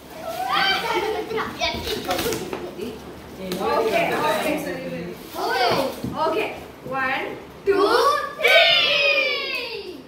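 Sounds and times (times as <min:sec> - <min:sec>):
children calling out and chattering: 0:00.0 - 0:04.5, 0:05.3 - 0:06.2, 0:07.6 - 0:10.0.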